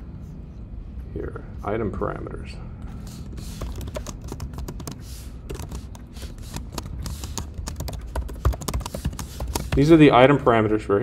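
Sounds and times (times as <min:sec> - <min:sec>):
computer keyboard key clicks: 0:03.6 - 0:09.9.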